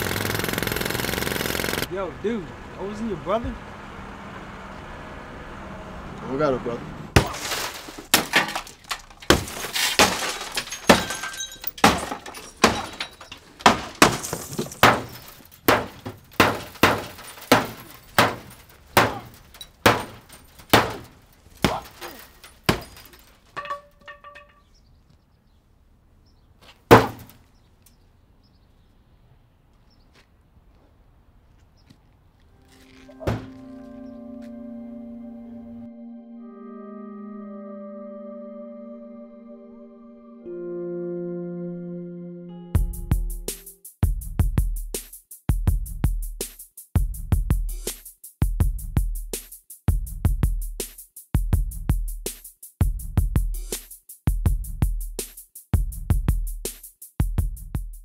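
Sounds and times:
car body being smashed: 7.2 - 24.6, 26.9 - 27.4
glass cracking and breaking: 7.2 - 24.7
sharp thunk: 26.9 - 27.4, 33.2 - 33.5
ambient music of sustained tones: 32.5 - 42.8.

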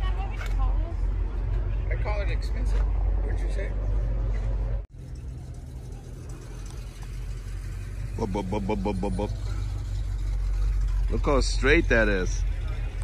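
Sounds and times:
steady low rumble: 4.6 - 11.2.

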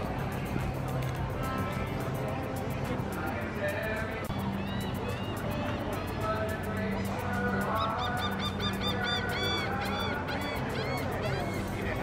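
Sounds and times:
background music: 0.0 - 12.0
geese honking: 7.7 - 12.0.

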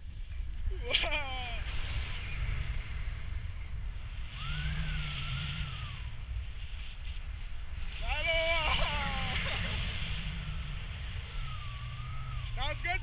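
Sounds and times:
wind rushing over microphone: 0.0 - 13.0
person calling out: 0.7 - 1.6, 8.0 - 9.6
person whooping: 0.7 - 1.7, 8.0 - 9.9.

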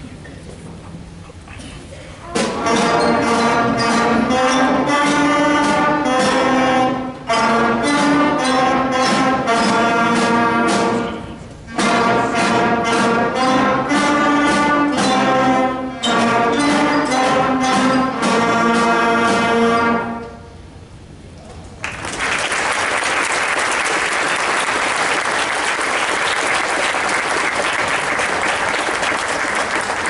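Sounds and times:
concert band playing: 2.2 - 20.7.

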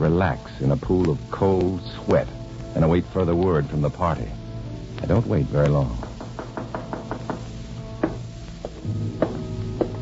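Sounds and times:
held music: 0.0 - 10.0
knocking on a door: 6.0 - 10.0.

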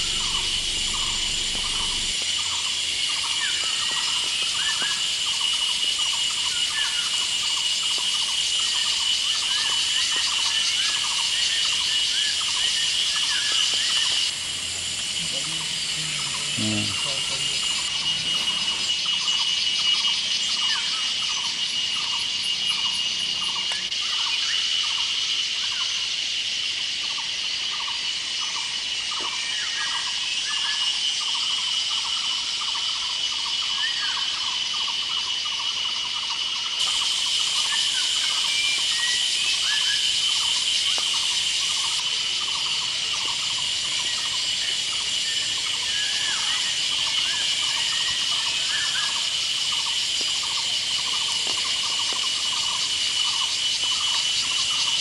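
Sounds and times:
shrill insect chorus: 0.0 - 55.0.

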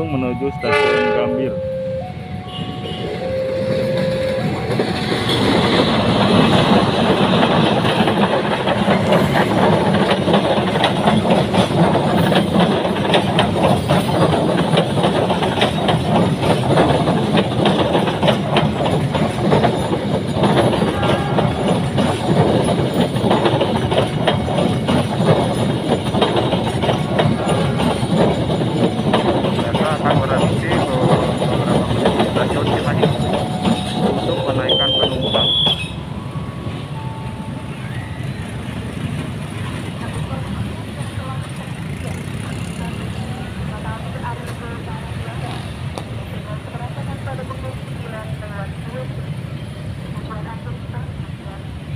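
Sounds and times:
train rumbling past: 0.0 - 51.9
wheels clattering on rails: 3.5 - 51.8.

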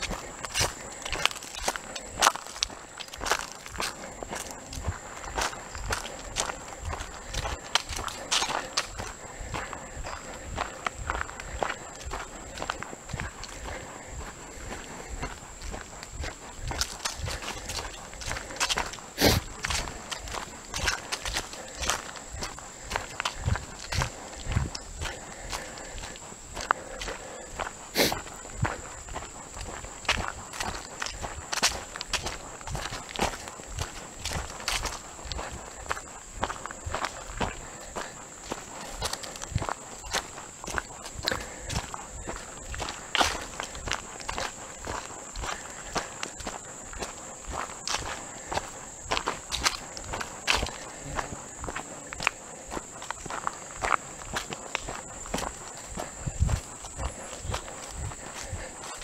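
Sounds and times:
footsteps on dirt and grass: 0.0 - 59.0.

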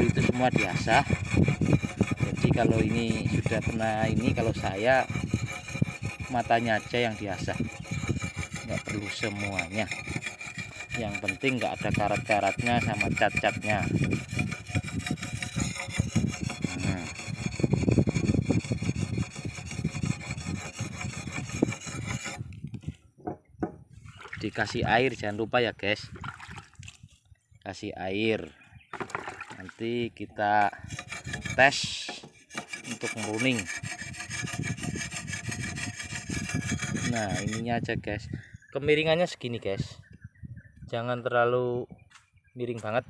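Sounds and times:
sharpening stone scraping steel: 0.0 - 22.5, 30.6 - 37.7.

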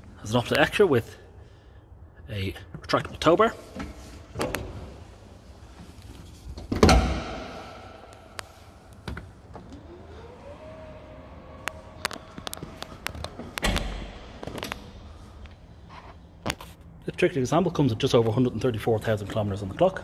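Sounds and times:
electric motor whining: 9.5 - 14.6.

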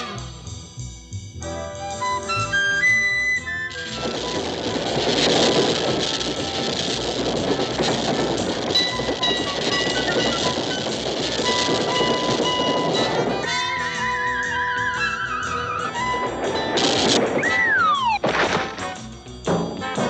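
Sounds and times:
held music notes: 1.3 - 20.0
cartoon streetcar rattling clatter: 1.9 - 20.0.

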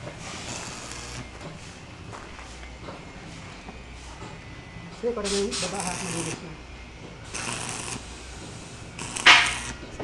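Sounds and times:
arc welding crackling hiss: 0.2 - 1.8, 5.2 - 6.6, 7.2 - 9.8.

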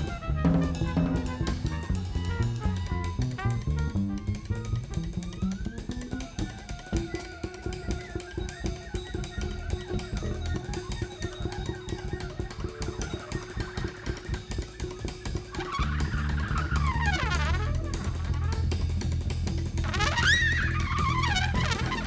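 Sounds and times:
low bass notes: 0.0 - 6.0, 15.6 - 22.0
busy drumming: 0.0 - 22.0
free jazz quartet: 0.0 - 22.0.

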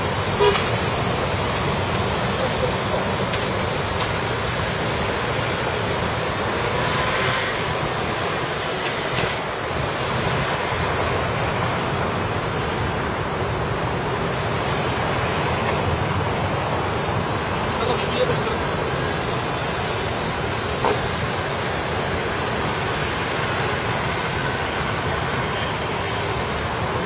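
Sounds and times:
road traffic rush: 0.0 - 27.0.

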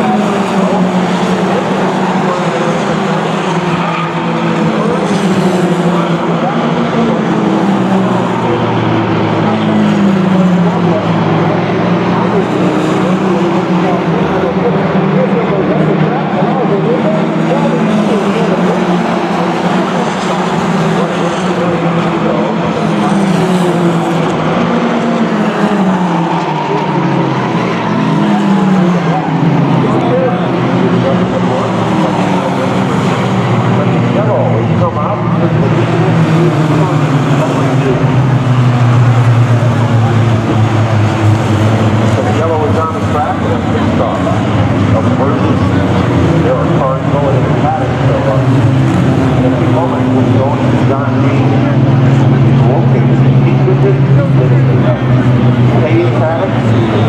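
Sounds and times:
race car engines passing by: 0.0 - 57.0.

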